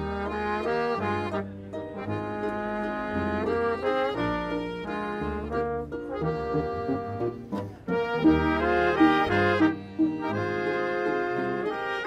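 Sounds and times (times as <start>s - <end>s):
accordion: 0.0s - 12.0s
brass playing: 0.0s - 12.0s
double bass line: 0.0s - 12.0s.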